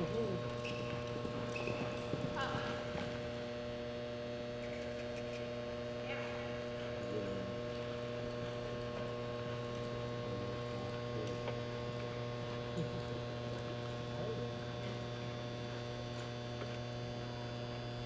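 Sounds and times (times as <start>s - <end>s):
electrical mains hum: 0.0s - 18.0s.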